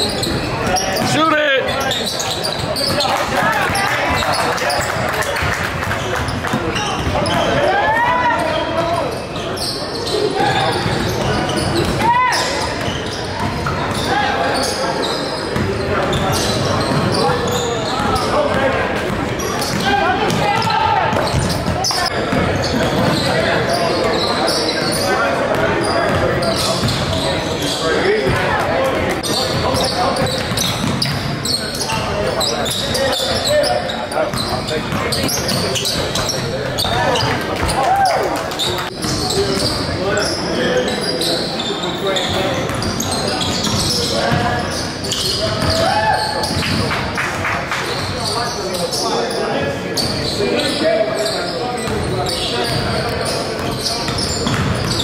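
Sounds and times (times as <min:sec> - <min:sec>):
basketball bouncing on hardwood: 0:54.5 - 0:54.9.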